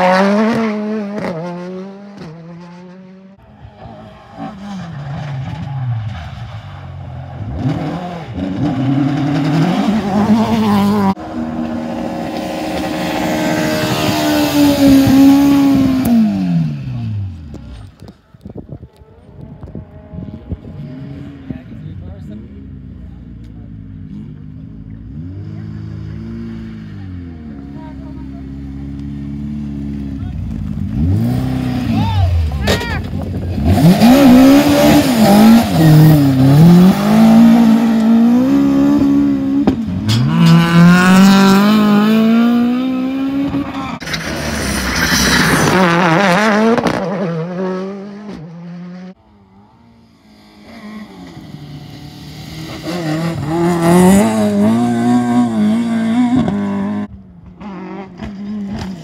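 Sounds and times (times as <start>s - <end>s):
rally car engine revving: 0.0s - 18.1s, 18.9s - 59.0s
approaching rally car: 0.0s - 59.0s.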